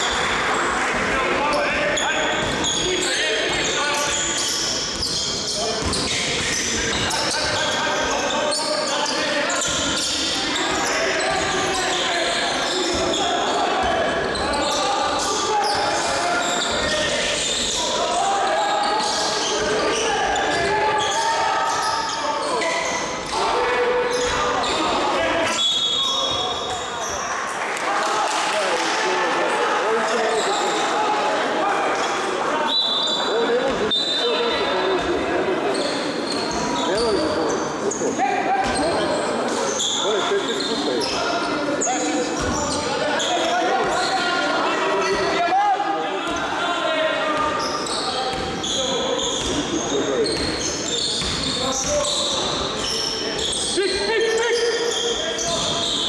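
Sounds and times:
talk and shouts of people: 0.0s - 56.0s
short high squeals: 52.0s - 56.0s.

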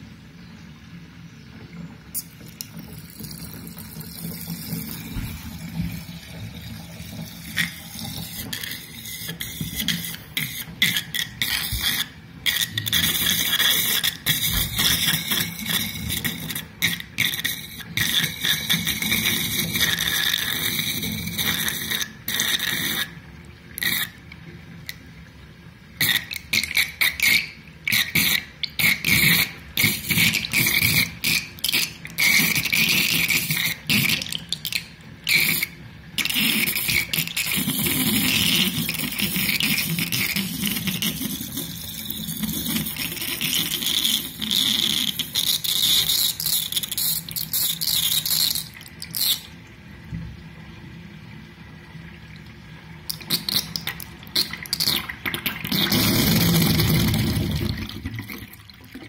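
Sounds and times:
drain gurgling: 0.0s - 59.0s.

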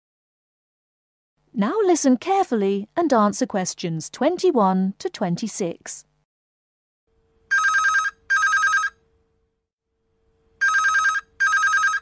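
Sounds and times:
telephone ringing: 7.5s - 9.0s, 10.6s - 12.0s.

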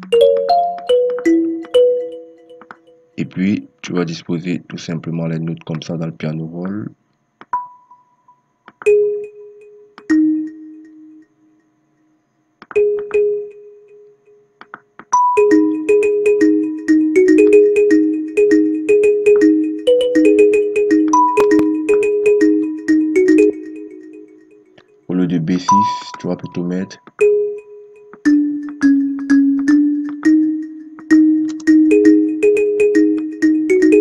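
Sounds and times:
kalimba notes: 0.0s - 3.4s, 8.9s - 11.2s, 15.1s - 34.0s.

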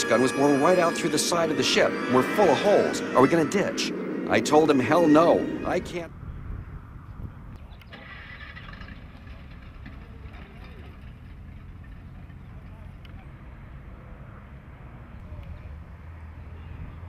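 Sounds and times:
distant indistinct voices: 0.0s - 6.2s
steady low rumble: 0.0s - 7.5s.

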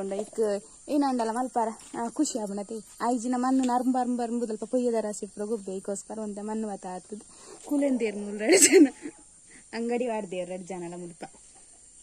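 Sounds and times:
woman talking: 0.0s - 9.1s, 9.7s - 11.4s.

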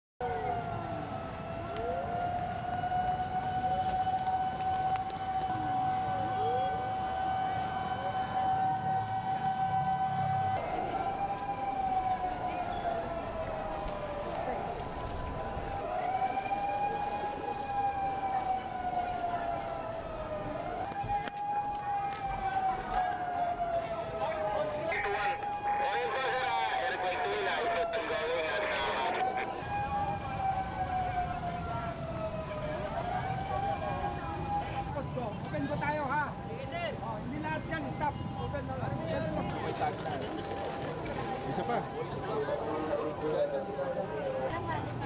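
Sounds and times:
siren rising and falling: 0.2s - 36.8s
second siren wailing: 0.2s - 39.9s, 41.4s - 45.0s.

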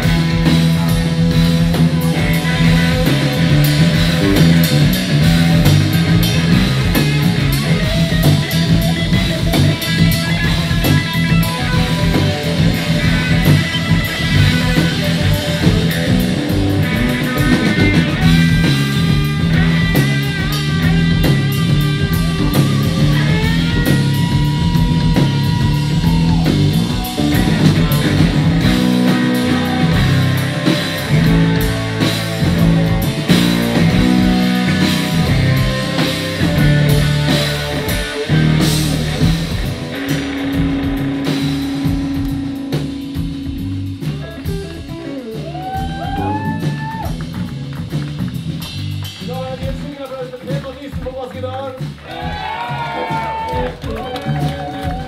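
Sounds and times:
electric guitar bending notes: 0.0s - 49.2s
driving bass line: 0.0s - 55.0s
steady drumming: 0.0s - 55.0s.

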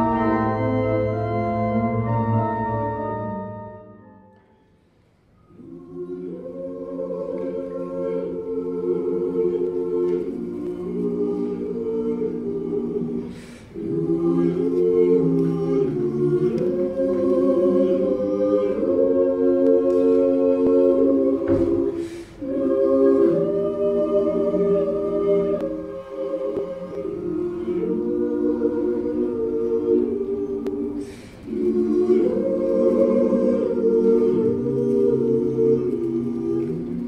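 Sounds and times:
mixed choir singing a cappella: 0.0s - 4.2s, 5.4s - 37.0s.

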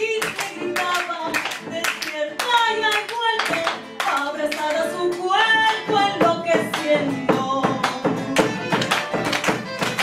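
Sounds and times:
woman singing: 0.0s - 9.4s
guitar: 0.0s - 10.0s
rhythmic hand clapping: 0.0s - 10.0s
violin: 0.0s - 10.0s.

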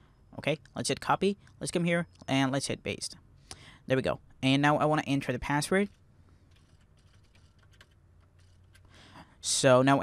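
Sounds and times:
low steady hum: 0.0s - 10.0s
computer keyboard keystrokes: 6.5s - 8.9s.

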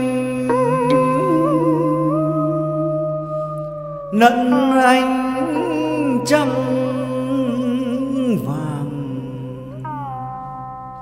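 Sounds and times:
accompanying drone: 0.0s - 11.0s
person singing a wavering note: 0.0s - 11.0s.

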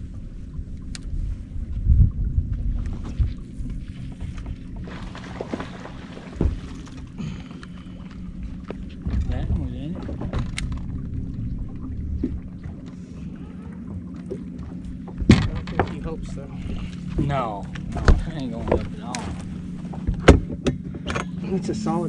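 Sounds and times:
steady low hum: 0.0s - 22.0s
knocks and thuds on boat deck: 4.0s - 7.4s, 8.6s - 12.8s, 13.9s - 21.4s.

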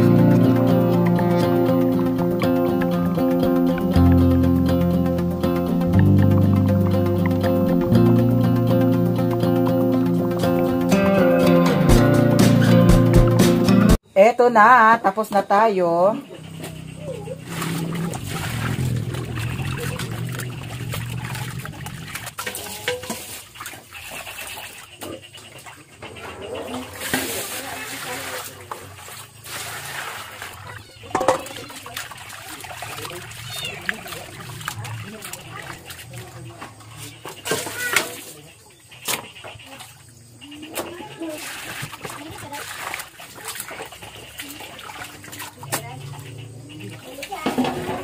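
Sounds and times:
hands squelching meat in water: 17.4s - 24.8s, 27.0s - 36.8s, 41.4s - 46.0s.

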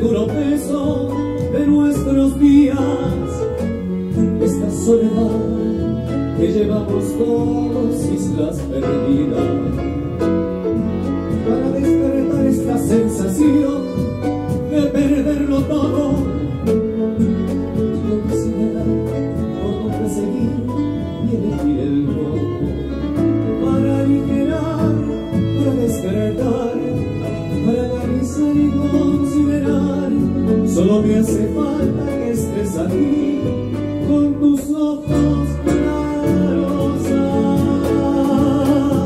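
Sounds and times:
cajon: 0.0s - 39.0s
double bass: 0.0s - 39.0s
violin melody: 0.0s - 39.0s.

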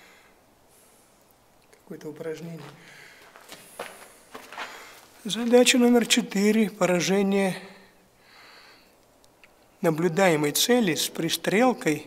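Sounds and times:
footsteps on debris: 2.5s - 5.8s.

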